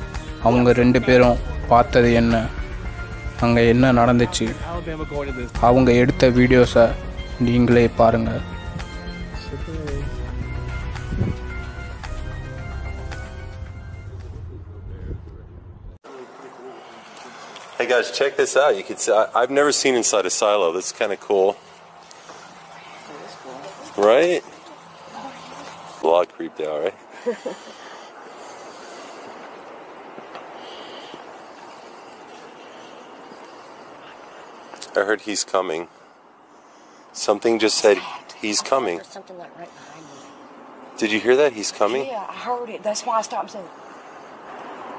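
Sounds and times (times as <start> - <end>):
outdoor background hiss: 0.0 - 13.6, 16.0 - 44.9
background music with held notes: 0.0 - 14.6.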